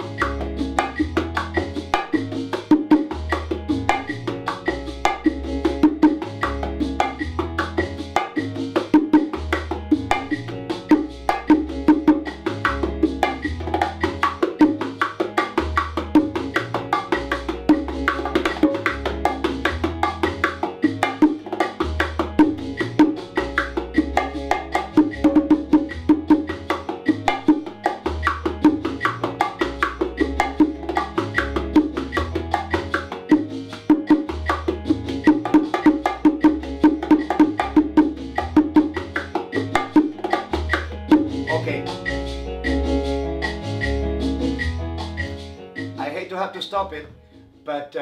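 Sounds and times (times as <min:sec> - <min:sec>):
low bass line: 0:00.0 - 0:08.1, 0:21.8 - 0:33.5, 0:34.1 - 0:45.6
bongo drums played by hand: 0:00.0 - 0:47.7.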